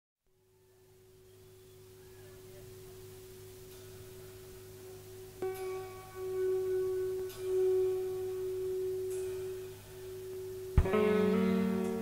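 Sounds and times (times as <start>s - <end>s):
guitar note ringing: 1.4s - 12.0s.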